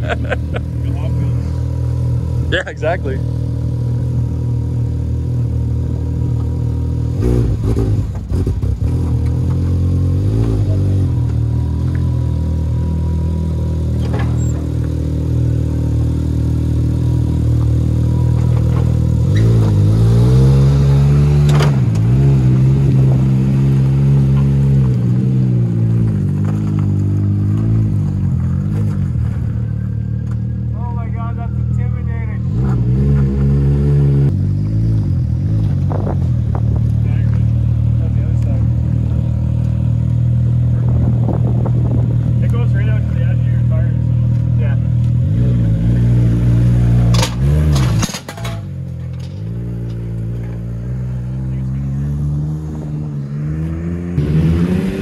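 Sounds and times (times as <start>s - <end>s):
engine idling and revving: 0.0s - 55.0s.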